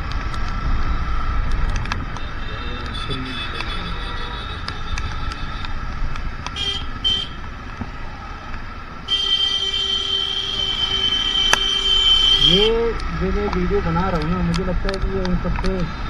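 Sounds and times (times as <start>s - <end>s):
motorcycle riding: 0.0s - 9.1s
road rumble: 0.0s - 16.0s
wind: 0.0s - 16.0s
vehicle horn: 2.1s - 5.8s, 6.6s - 7.4s, 9.1s - 12.8s.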